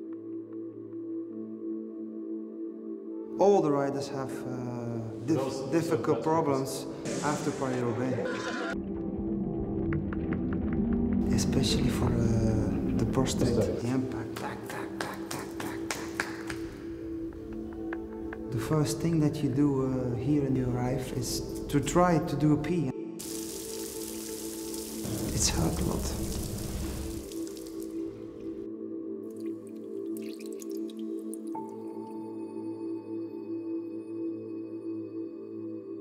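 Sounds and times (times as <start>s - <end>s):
water dripping in shower: 23.2s - 28.6s, 29.2s - 31.8s.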